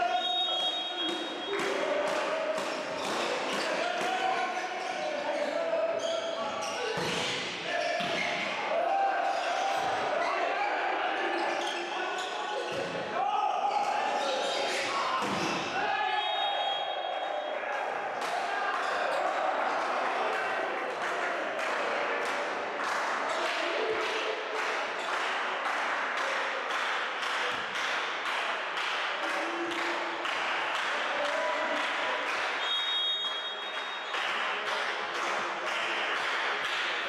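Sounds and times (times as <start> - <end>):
referee's whistle: 0.0 - 1.5, 16.0 - 17.5, 32.6 - 34.2.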